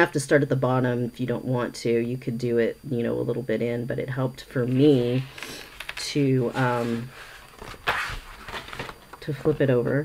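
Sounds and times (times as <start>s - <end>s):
paper pages rustling: 4.7s - 9.6s.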